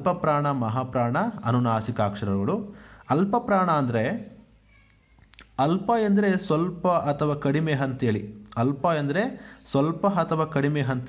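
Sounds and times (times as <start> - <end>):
man speaking: 0.0 - 4.4, 5.5 - 11.0.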